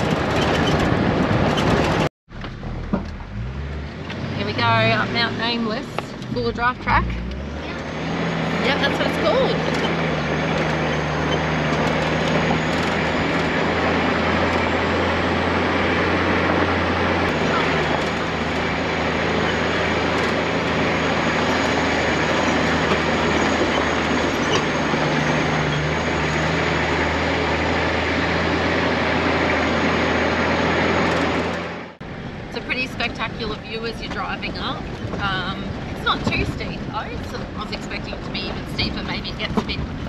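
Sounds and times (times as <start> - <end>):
vehicle engine droning: 0.0 - 40.0.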